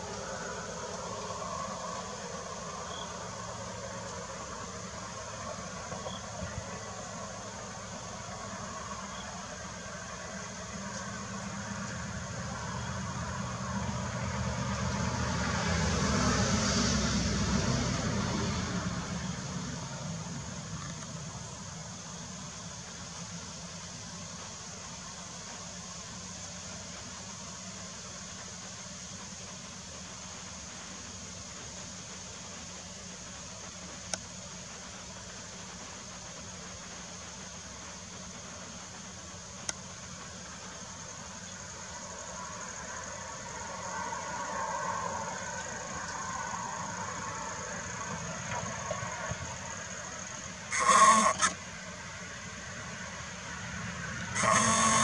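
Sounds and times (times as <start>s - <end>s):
outdoor background hum: 0.0s - 55.0s
vehicle passing: 13.2s - 20.0s.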